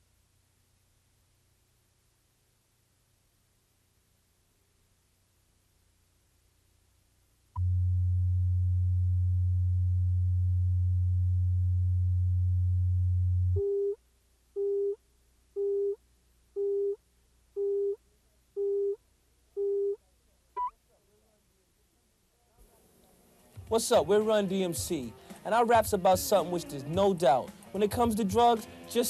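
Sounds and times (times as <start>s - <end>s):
low reference tone: 7.6s - 13.7s.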